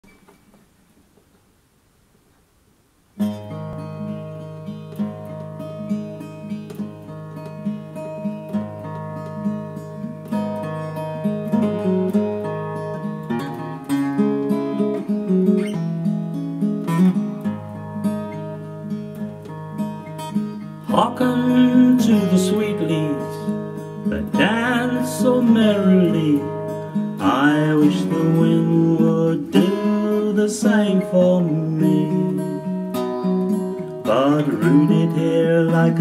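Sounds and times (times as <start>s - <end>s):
fingerstyle acoustic guitar: 3.1s - 36.0s.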